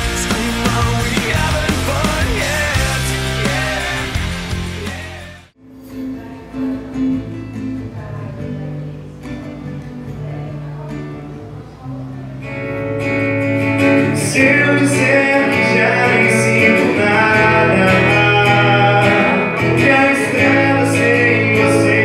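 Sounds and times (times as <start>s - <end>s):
rock music: 0.0s - 6.0s, 12.5s - 22.0s
acoustic guitar notes ringing: 0.0s - 22.0s.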